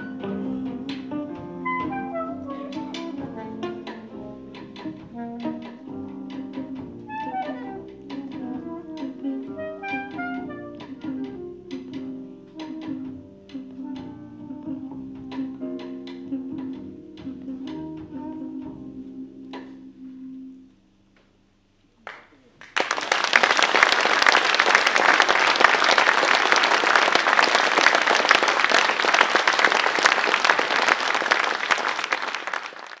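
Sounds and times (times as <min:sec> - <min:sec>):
jazz band playing: 0:00.0 - 0:20.7
audience applause: 0:22.0 - 0:33.0.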